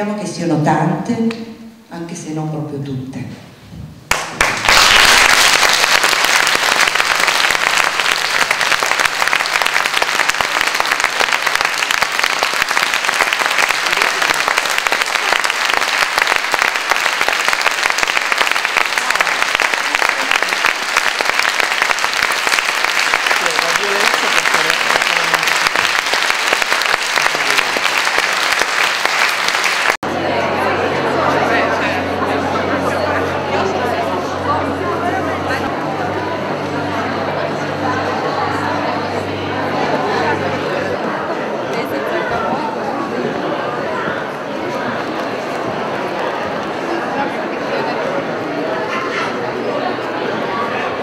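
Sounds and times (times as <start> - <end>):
audience applauding: 4.1 - 34.8.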